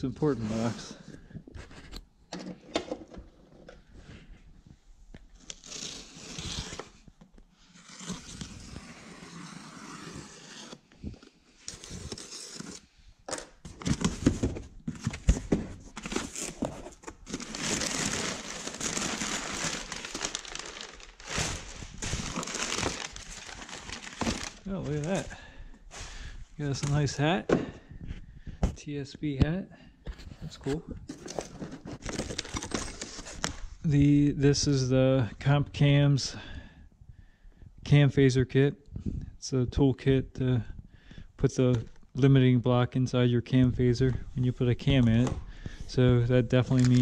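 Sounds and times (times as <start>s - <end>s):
packing material crinkling: 15.9s - 26.1s, 46.6s - 47.0s.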